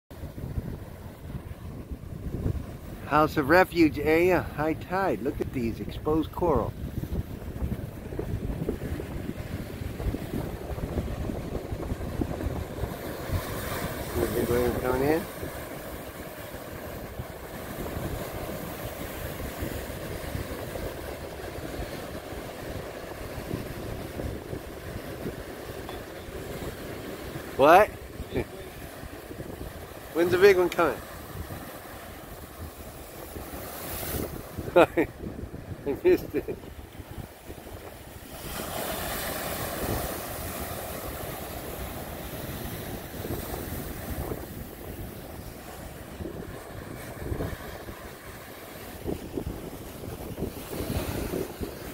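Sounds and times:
wind buffeting microphone: 0.1 - 3.4, 4.0 - 51.9
ocean surf breaking on rock: 0.2 - 51.9.

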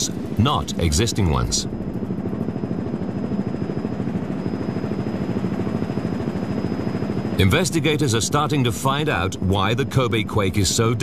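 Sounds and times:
helicopter rotor flutter: 0.0 - 11.0.

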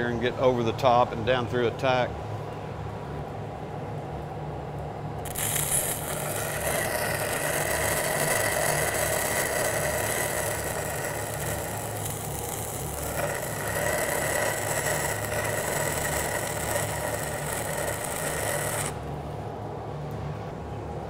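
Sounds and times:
welding arc crackling: 5.2 - 19.4.

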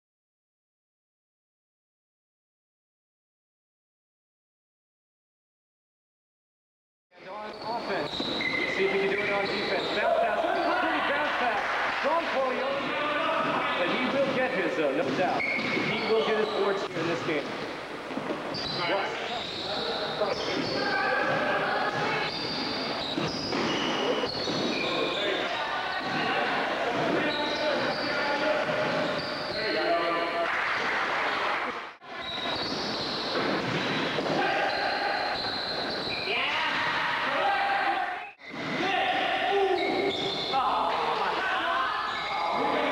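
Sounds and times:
sneakers squeaking: 7.2 - 37.1, 38.2 - 42.9
basketball court noise: 7.2 - 42.9
voices echoing in a gym: 7.2 - 42.9
players calling out: 7.3 - 17.7, 18.5 - 42.9
basketball bouncing on court: 13.3 - 16.4, 20.3 - 29.6, 32.2 - 36.3.

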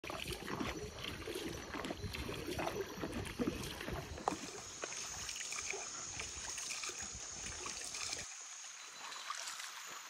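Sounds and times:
paddle splashes: 0.0 - 10.0.

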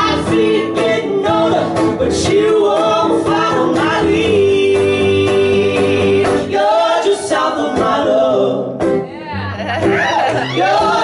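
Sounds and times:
acoustic guitar: 0.0 - 11.0
man and woman singing duet: 0.0 - 11.0.

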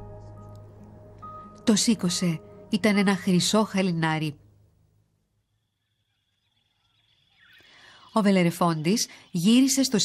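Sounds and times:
faint birdsong: 1.2 - 10.0.

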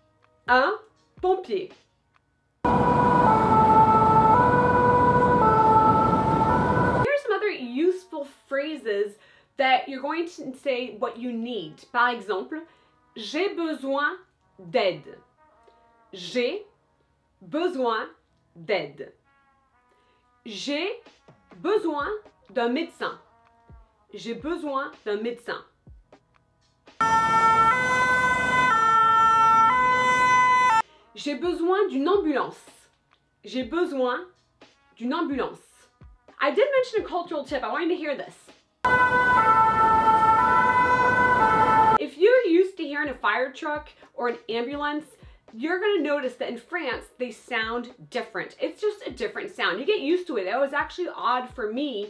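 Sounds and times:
two-tone siren: 2.7 - 7.1, 27.0 - 30.8, 38.9 - 42.0.

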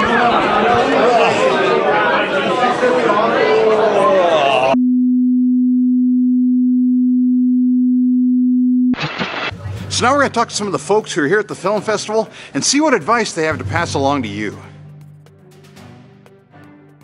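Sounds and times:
crowd chatter in a hall: 0.0 - 4.8
low sine-wave test tone: 4.8 - 8.9.

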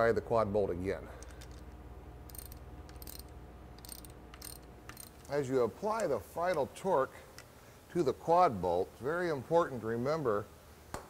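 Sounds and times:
ratchet wrench clicking: 2.3 - 5.4.

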